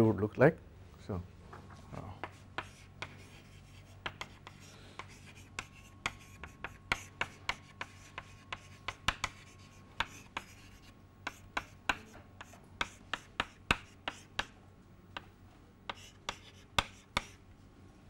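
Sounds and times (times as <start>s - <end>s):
chalk tapping and scraping: 2.2s - 14.6s, 15.9s - 17.4s.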